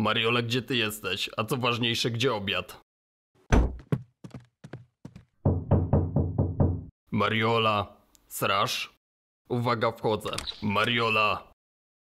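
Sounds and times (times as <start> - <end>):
knocking on a door: 3.5 - 6.9.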